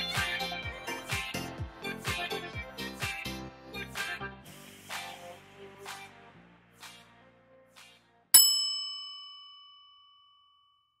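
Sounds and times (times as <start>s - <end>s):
bright bell ding: 8.4s - 11.0s.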